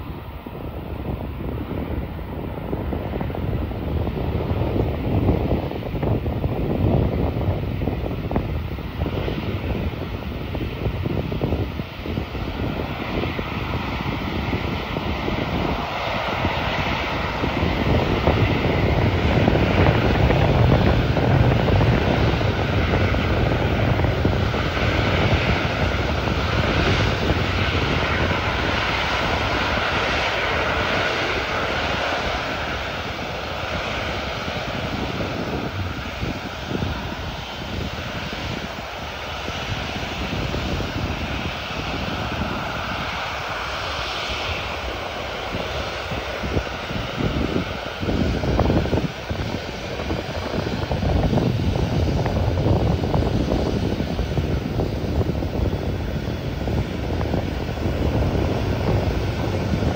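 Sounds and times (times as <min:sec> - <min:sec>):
jet engines running: 0:00.0 - 0:59.9.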